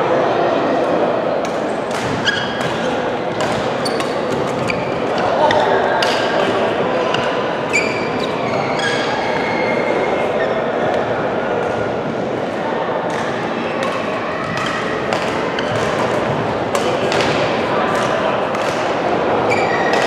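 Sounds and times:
racket hitting shuttlecock: 0:01.4 - 0:07.4, 0:13.1 - 0:20.0
shoes squeaking on court: 0:01.9 - 0:06.3, 0:07.1 - 0:10.6, 0:14.4 - 0:16.4, 0:19.5 - 0:20.0.

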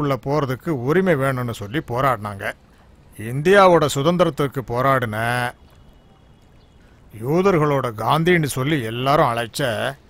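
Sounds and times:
man speaking: 0:00.0 - 0:02.6, 0:03.2 - 0:05.6, 0:07.1 - 0:10.0
faint background hiss: 0:00.0 - 0:10.0.

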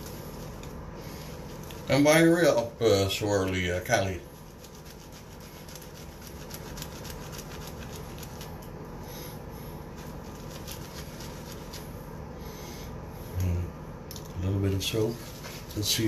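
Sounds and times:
shaving brush rubbing soap: 0:00.0 - 0:12.0, 0:14.8 - 0:16.0.

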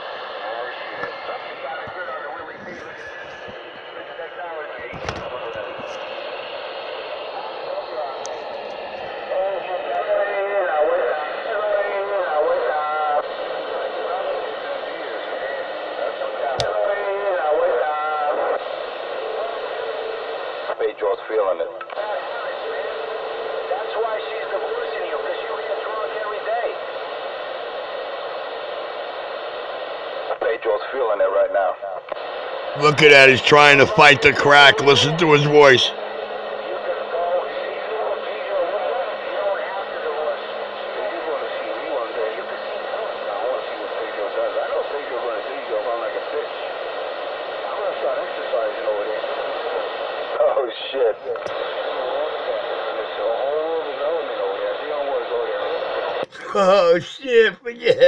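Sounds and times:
speech over a phone: 0:00.4 - 0:06.2, 0:32.7 - 0:36.0, 0:47.5 - 0:58.0.

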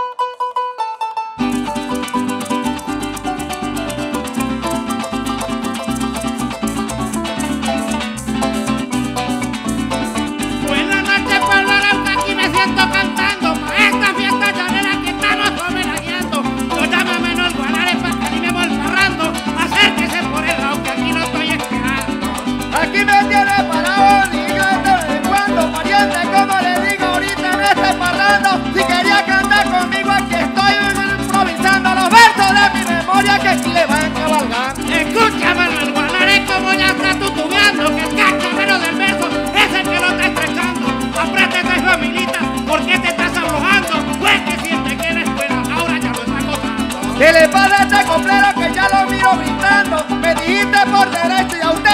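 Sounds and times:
maracas rhythm: 0:00.0 - 0:51.9
plucked harp: 0:00.0 - 0:51.9
person singing into microphone: 0:10.6 - 0:22.0, 0:22.8 - 0:51.9.

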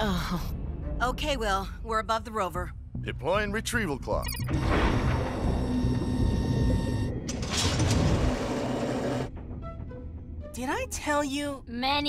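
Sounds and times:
faint background music: 0:00.0 - 0:04.5, 0:09.6 - 0:12.0.

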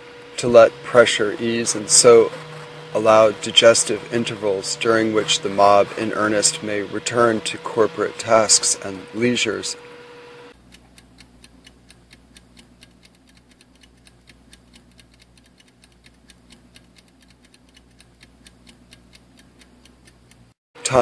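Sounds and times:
rapid steady ticking: 0:00.0 - 0:21.0.

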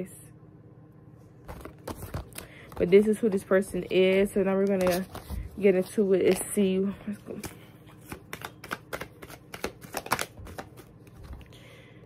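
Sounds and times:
cards being shuffled by hand: 0:01.4 - 0:11.5.

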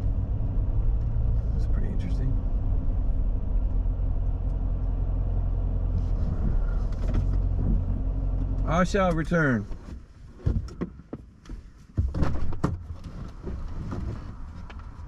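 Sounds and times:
car engine rumble from cabin: 0:00.0 - 0:15.0.

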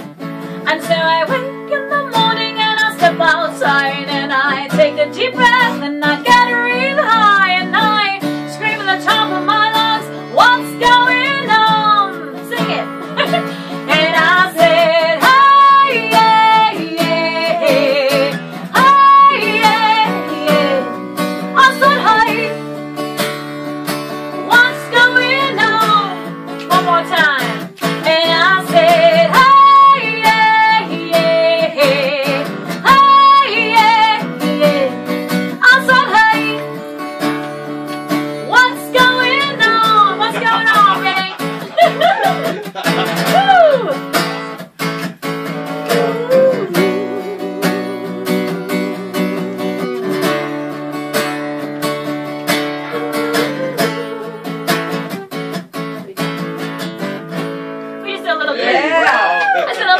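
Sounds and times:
acoustic guitar strumming: 0:00.0 - 0:58.8
woman singing with vibrato: 0:00.6 - 0:22.7, 0:24.3 - 0:36.8, 0:38.3 - 0:44.1, 0:45.4 - 0:50.9, 0:52.7 - 0:55.3.

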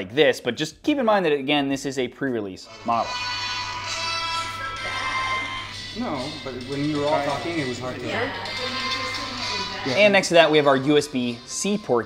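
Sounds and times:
music through phone speaker: 0:02.7 - 0:12.0.

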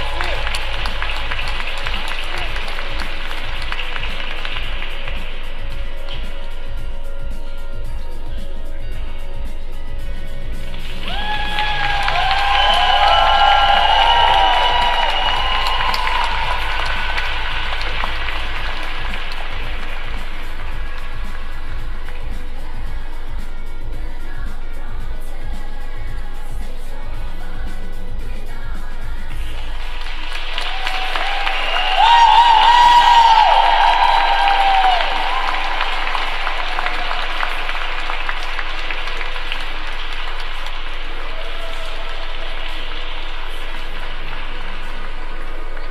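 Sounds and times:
audience applauding: 0:00.0 - 0:06.2, 0:10.8 - 0:21.5, 0:29.6 - 0:45.9
music playing: 0:00.0 - 0:45.9.

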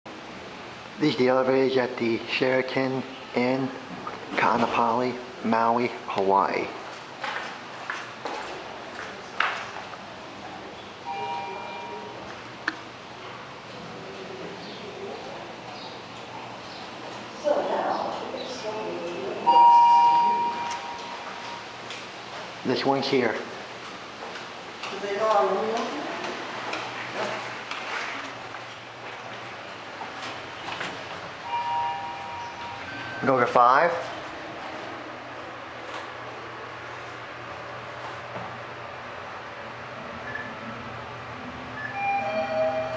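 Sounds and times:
footsteps on tiled floor: 0:06.9 - 0:10.0, 0:23.4 - 0:31.4
elevator two-pitch electronic tone: 0:11.0 - 0:12.3, 0:19.4 - 0:21.8, 0:31.4 - 0:33.4, 0:41.7 - 0:42.9.

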